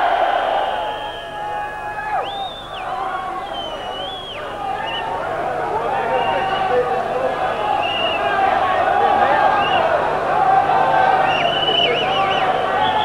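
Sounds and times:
crowd shouting and cheering: 0.0 - 13.0
long high steady tones: 0.0 - 13.0.

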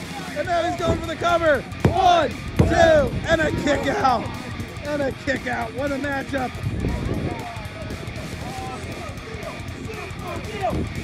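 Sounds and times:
background music: 0.0 - 11.0
faint voices: 0.0 - 11.0.

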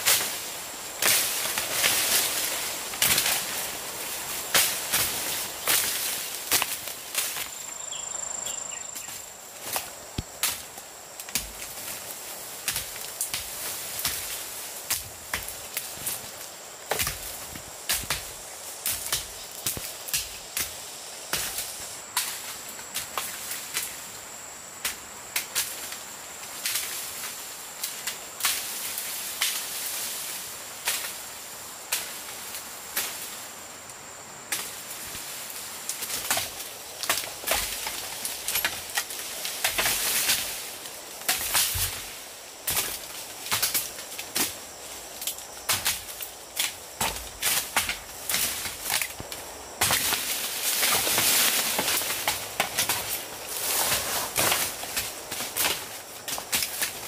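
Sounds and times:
dry leaves crackling underfoot: 0.0 - 20.5, 34.6 - 57.0
high insect drone: 0.0 - 57.0.

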